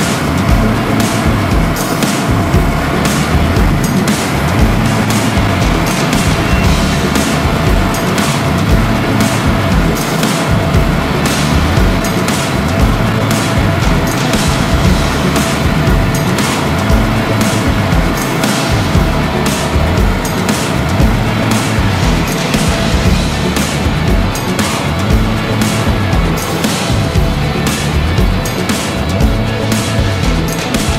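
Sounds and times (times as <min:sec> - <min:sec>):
loud music with drum beat: 0:00.0 - 0:30.9.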